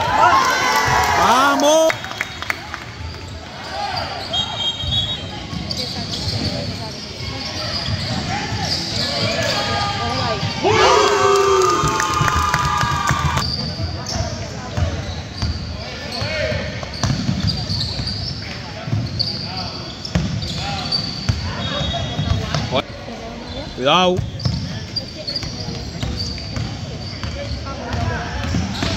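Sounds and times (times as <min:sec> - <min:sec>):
spectators talking and calling: 0:03.0 - 0:16.6
crowd shouting: 0:09.6 - 0:13.4
basketball bouncing on court: 0:11.8 - 0:18.2, 0:20.0 - 0:20.6, 0:24.2 - 0:24.8, 0:25.4 - 0:28.9.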